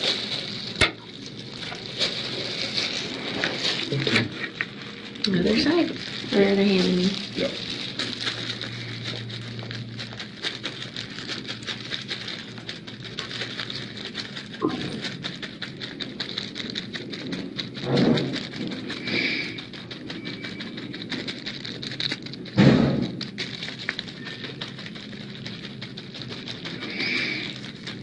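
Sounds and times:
crackling and rustling: 0.0s - 28.0s.

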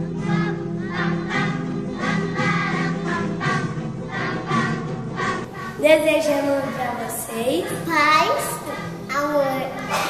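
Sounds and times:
choir singing with music: 0.0s - 10.0s.

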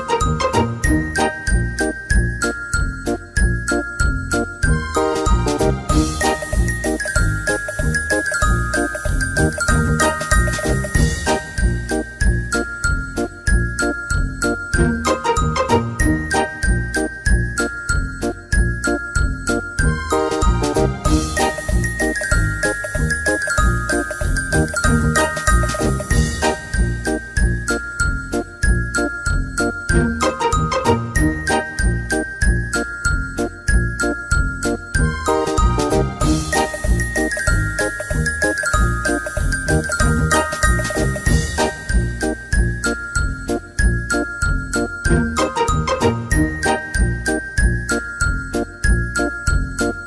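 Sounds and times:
light tinkly tune over steady beat: 0.0s - 50.0s.

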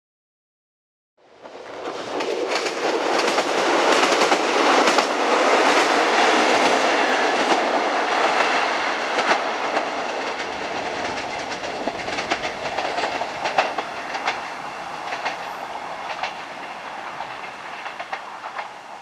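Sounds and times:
train rushing past: 1.2s - 19.0s
wheels clicking over rail joints: 1.4s - 19.0s.

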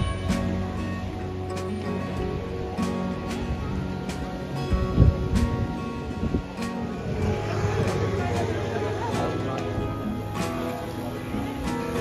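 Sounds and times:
people's voices: 0.0s - 12.0s
quiet background music: 0.0s - 12.0s.

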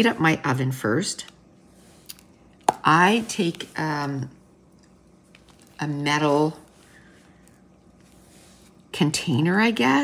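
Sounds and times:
woman's voice: 0.0s - 1.3s, 2.8s - 4.4s, 5.8s - 6.7s, 8.9s - 10.0s
faint low hum: 0.0s - 10.0s.

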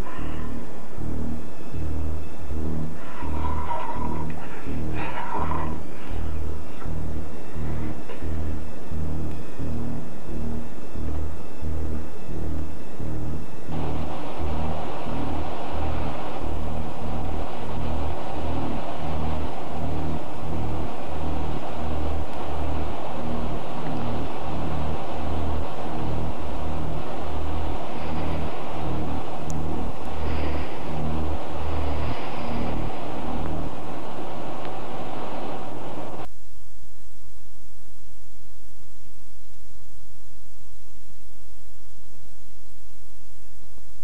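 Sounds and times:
hissy distorted wash: 0.0s - 44.0s
low bass pulse: 0.0s - 44.0s.

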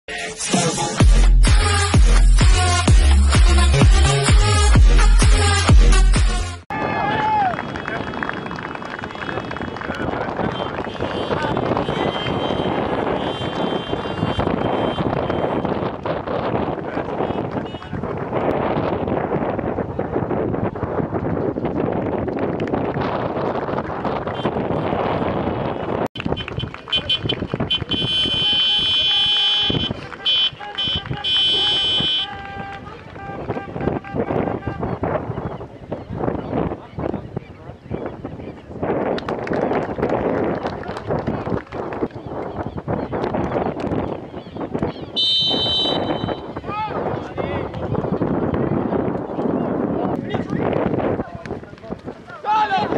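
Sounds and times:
stadium background noise: 6.7s - 15.8s, 25.9s - 35.5s, 44.8s - 52.9s
horns tooting: 6.7s - 18.2s, 24.2s - 35.6s, 45.1s - 47.1s
wind buffeting microphone: 6.7s - 52.9s
referee's whistle blast: 28.0s - 32.3s, 45.2s - 46.5s.

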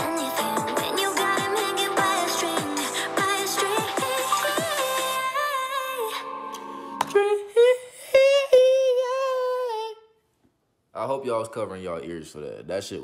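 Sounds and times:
electronic pop music: 0.0s - 8.3s.

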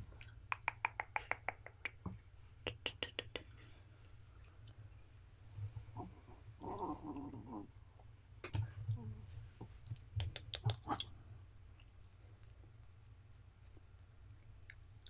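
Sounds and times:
mouth clicks and kissing sounds: 0.2s - 3.6s, 9.7s - 11.2s.

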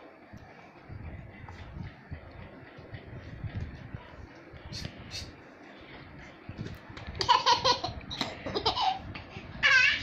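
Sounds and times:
baby giggling: 7.2s - 9.0s.

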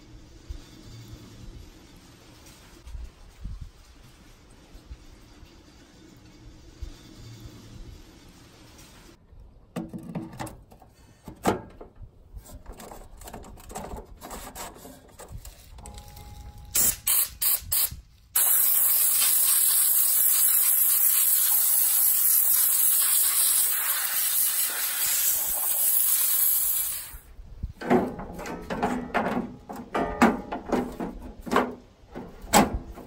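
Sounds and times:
spray nozzle hissing: 18.4s - 27.2s.

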